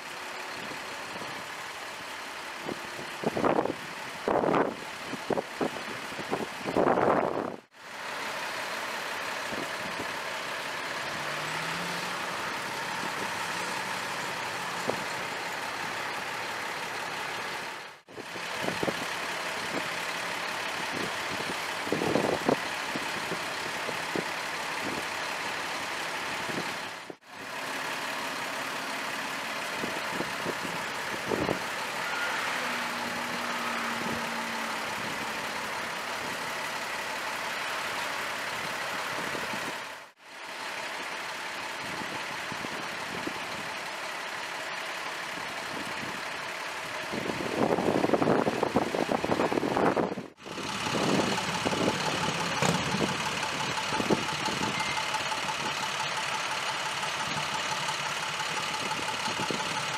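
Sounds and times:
fire engine idling: 0.0 - 59.9
street traffic noise: 0.0 - 59.9.

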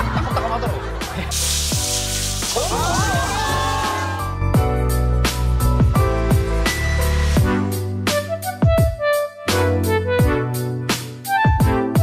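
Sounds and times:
background music with bass line: 0.0 - 12.0
shower head spraying water: 1.3 - 4.1.

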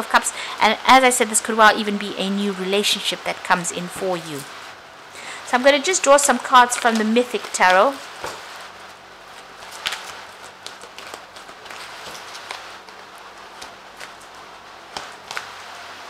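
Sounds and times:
faint steady hiss: 0.0 - 16.0
cards rustling: 9.3 - 15.7.

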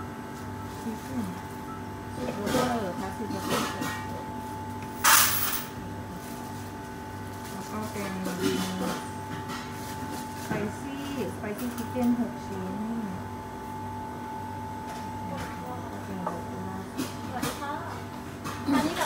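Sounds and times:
steady electrical hum: 0.0 - 19.0.

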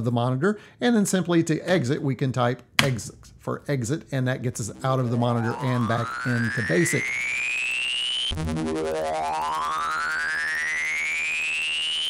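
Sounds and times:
low electronic pulse: 4.6 - 12.0
synthesized rising sweep tone: 4.6 - 12.0.

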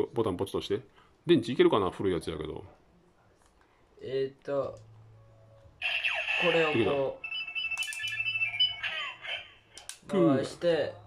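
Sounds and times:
thin electronic toy tones: 5.8 - 9.2.

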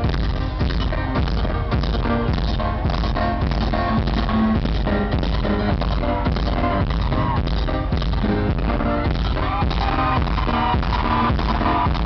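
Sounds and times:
drum-kit beat: 0.0 - 12.0.

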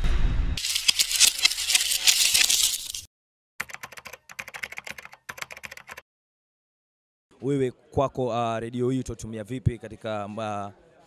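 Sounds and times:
keyboard typing clicks: 3.6 - 6.0.

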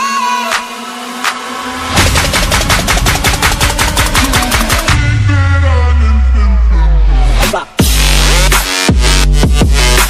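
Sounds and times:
electronic drum roll: 1.2 - 5.1.

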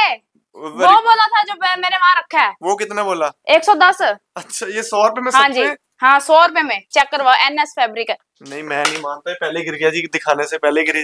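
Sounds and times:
people talking: 0.0 - 11.0.

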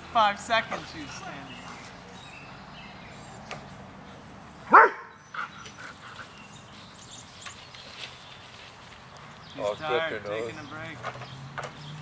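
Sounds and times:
dog barking sharply: 4.7 - 5.1.

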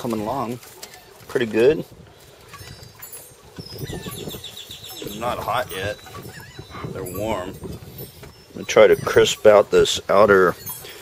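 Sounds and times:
bird chirp: 2.2 - 11.0
small bird trilling: 3.6 - 7.6.

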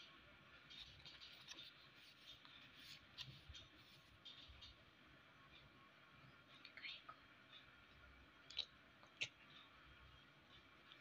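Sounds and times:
soft scratchy sound: 0.0 - 11.0.

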